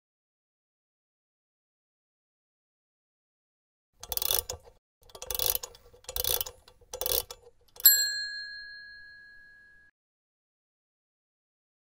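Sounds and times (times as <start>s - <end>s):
bright bell-like ding: 7.8s - 9.9s.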